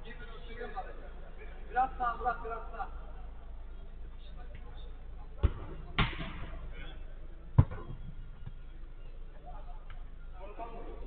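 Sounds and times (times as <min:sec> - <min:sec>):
football kicked thuds: 0:05.4 - 0:06.5, 0:07.5 - 0:08.6.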